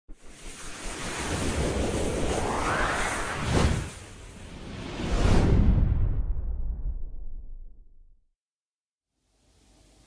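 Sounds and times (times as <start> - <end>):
rushing whoosh: 0.2 - 7.1.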